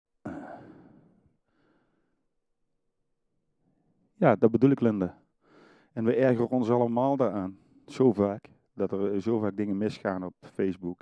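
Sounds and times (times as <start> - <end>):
man sighing into microphone: 0.3 - 1.8
faint breath: 0.3 - 2.2, 5.4 - 6.0.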